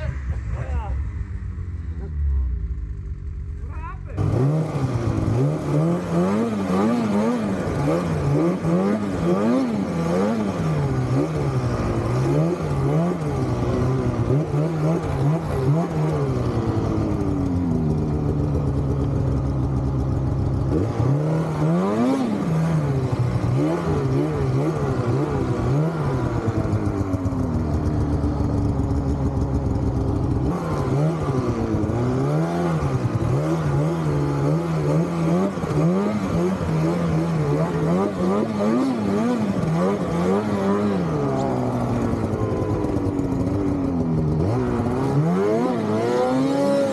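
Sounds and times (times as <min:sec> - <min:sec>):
snowmobile engine revving: 0:00.0 - 0:46.9.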